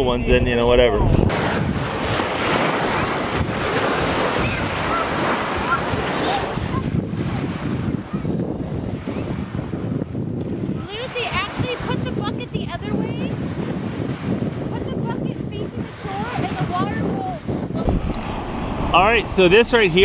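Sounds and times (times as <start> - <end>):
wind buffeting microphone: 0.0 - 20.0
waves washing on shore: 1.0 - 20.0.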